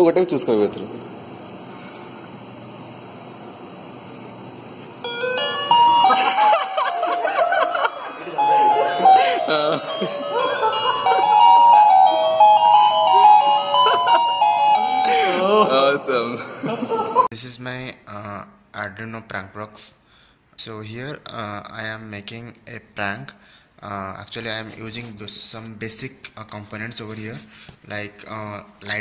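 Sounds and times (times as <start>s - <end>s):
electronic doorbell tune: 5.0s - 16.1s.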